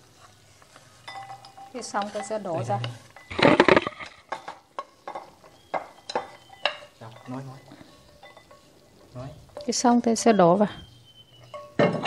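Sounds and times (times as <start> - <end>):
metal utensil scraping frying pan: 0.0 - 9.9.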